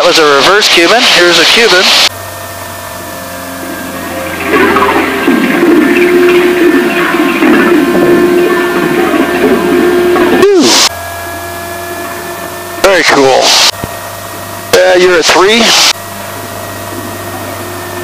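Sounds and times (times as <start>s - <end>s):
airplane engine and propeller drone: 0.0s - 18.0s.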